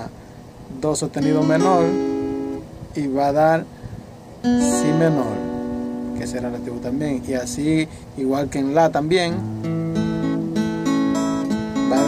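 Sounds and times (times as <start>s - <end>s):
acoustic guitar chord picked: 1.2s - 2.7s, 4.4s - 8.0s, 9.3s - 12.0s.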